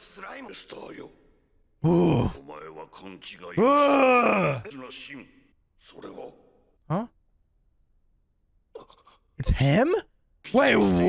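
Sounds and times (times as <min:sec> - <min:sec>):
man's drawn-out vocal sound: 0:01.8 - 0:02.4, 0:03.6 - 0:04.6.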